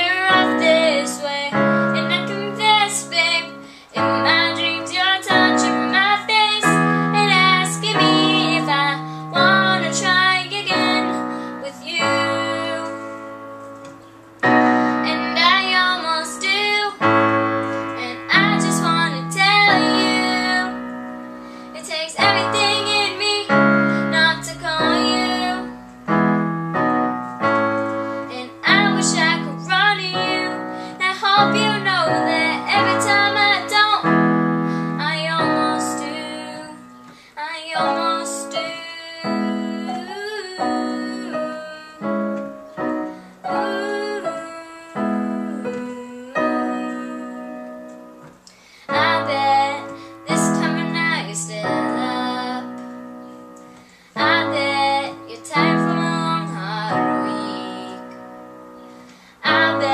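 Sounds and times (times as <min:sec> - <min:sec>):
digital piano chords: 0:00.0 - 0:59.9
girl singing a slow ballad: 0:00.0 - 0:59.9.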